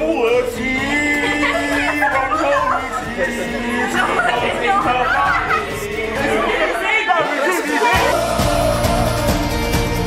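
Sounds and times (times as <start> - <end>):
people chattering and calling out: 0.0 - 9.5.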